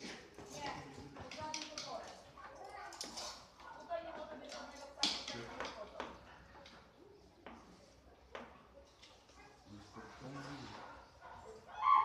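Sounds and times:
dog's paws on wooden treadmill: 0.0 - 6.8.

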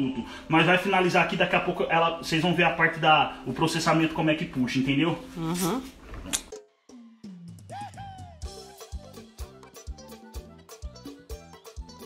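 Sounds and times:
background music: 0.0 - 5.9, 6.5 - 12.0.

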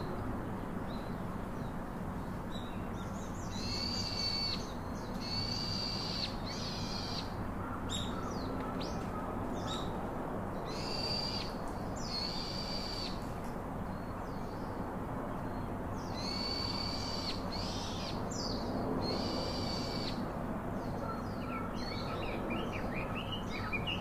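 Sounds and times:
steady background noise: 0.0 - 24.0
high drawn-out bird calls: 21.0 - 24.0.

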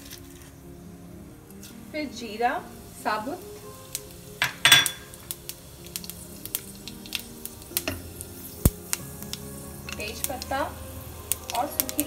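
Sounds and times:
faint background music: 0.0 - 12.0
seeds spluttering in hot oil: 0.0 - 12.0
utensils clinking against pan: 4.4 - 5.3.

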